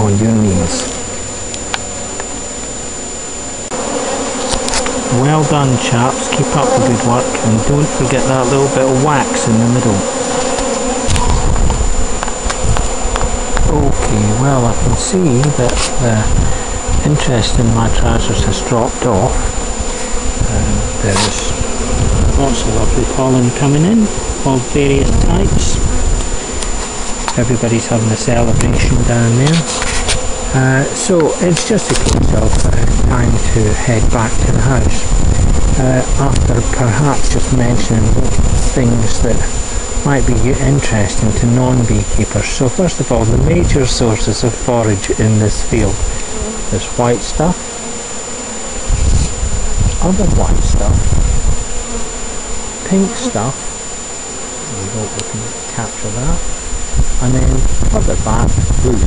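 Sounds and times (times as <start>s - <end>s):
honeybees buzzing: 0.0s - 59.0s
low microphone rumble: 0.0s - 59.0s.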